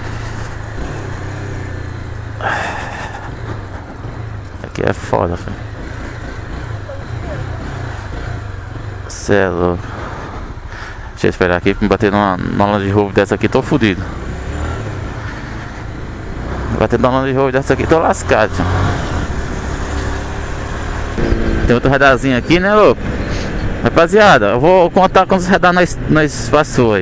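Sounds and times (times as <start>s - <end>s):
motorcycle engine running: 0.0s - 10.4s, 12.4s - 26.9s
traffic hum: 0.0s - 27.0s
wind and road noise: 0.0s - 27.0s.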